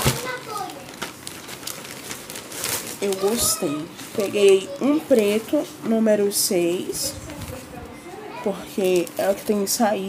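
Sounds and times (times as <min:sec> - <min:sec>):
plastic wrapping crinkling: 0:00.0 - 0:05.8, 0:08.7 - 0:09.8.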